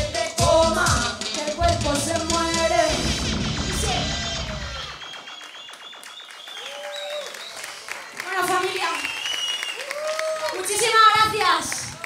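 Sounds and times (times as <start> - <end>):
band playing song: 0.0 - 5.2
audience applause and cheering: 2.9 - 12.0
shouted whoops: 6.5 - 7.7, 9.0 - 10.7.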